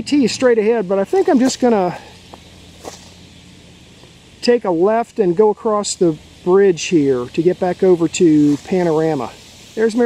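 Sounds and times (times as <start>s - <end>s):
low hum: 0.0s - 10.0s
footsteps on gravel path: 0.9s - 4.2s, 8.4s - 9.3s.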